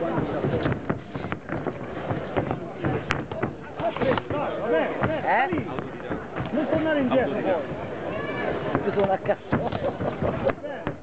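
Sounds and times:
sharp knocks and thuds: 0:00.0 - 0:07.9, 0:08.7 - 0:11.0.

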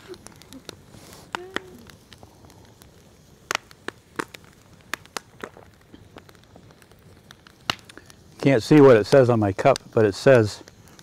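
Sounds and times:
campfire crackling and popping: 0:00.0 - 0:11.0.

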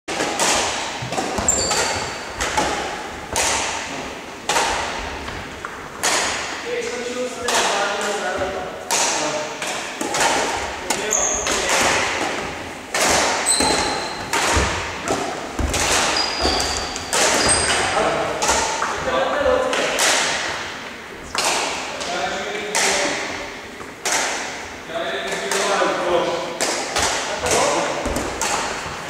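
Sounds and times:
racket hitting shuttlecock: 0:00.1 - 0:06.6, 0:07.4 - 0:24.7, 0:26.5 - 0:29.0
shoes squeaking on court floor: 0:01.0 - 0:02.9, 0:10.9 - 0:11.7, 0:13.2 - 0:19.7.

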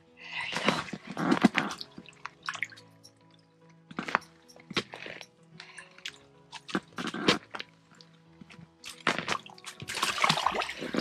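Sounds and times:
soft background music: 0:00.0 - 0:11.0
fish splashing in water: 0:08.9 - 0:11.0.

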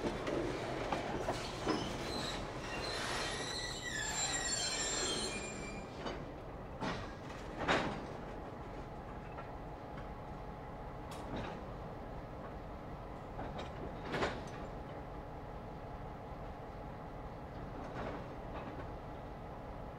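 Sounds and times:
train wheels squealing: 0:01.2 - 0:07.2.

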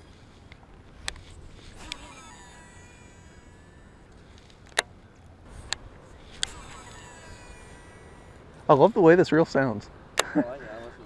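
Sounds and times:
fishing reel braking whine: 0:00.0 - 0:09.1
reel mechanism clicks: 0:00.2 - 0:08.6.

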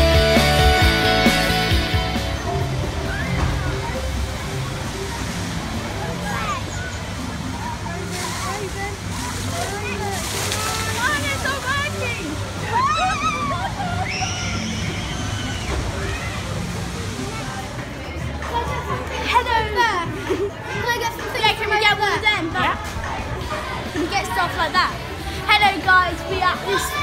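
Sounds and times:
distant voices: 0:01.1 - 0:27.0
water rushing down a flume: 0:02.1 - 0:19.9.

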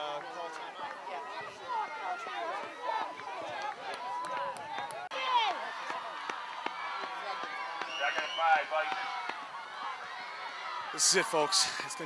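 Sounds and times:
crowd chattering and calling out: 0:00.0 - 0:12.0.

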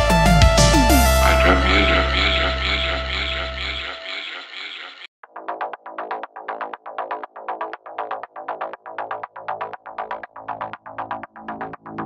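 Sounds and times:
low bass note: 0:00.5 - 0:04.0
wavering synthesizer texture: 0:00.5 - 0:05.1.

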